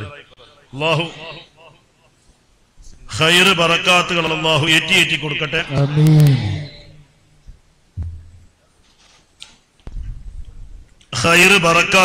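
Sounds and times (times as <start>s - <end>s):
man's voice over sound system: 0.0s - 1.5s, 3.1s - 6.9s, 11.2s - 12.0s.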